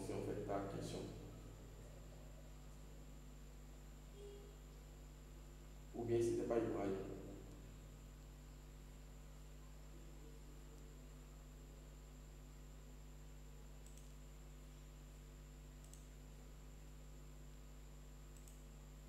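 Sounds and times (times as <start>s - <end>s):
steady electrical hum: 0.0s - 19.0s
faint sharp clicks: 13.8s - 14.2s, 15.8s - 16.2s, 18.3s - 18.7s.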